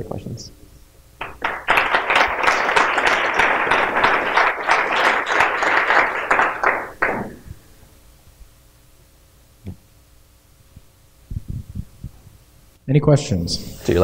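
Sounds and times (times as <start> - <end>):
audience applauding: 1.2 - 7.5.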